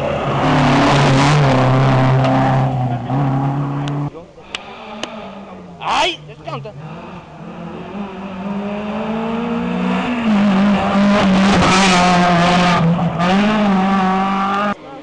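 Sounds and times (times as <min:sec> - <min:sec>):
rally car engine at full throttle: 0:00.0 - 0:15.0.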